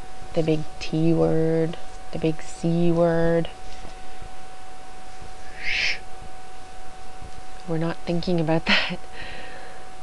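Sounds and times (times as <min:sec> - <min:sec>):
breath blown through lips: 0:05.4 - 0:06.0.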